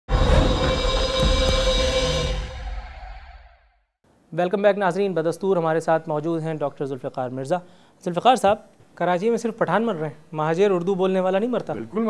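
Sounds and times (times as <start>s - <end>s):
loud low rumble: 0.1s - 3.6s.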